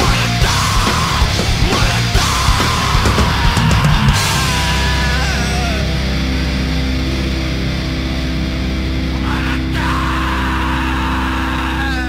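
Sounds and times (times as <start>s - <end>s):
metal band playing: 0.0s - 10.2s.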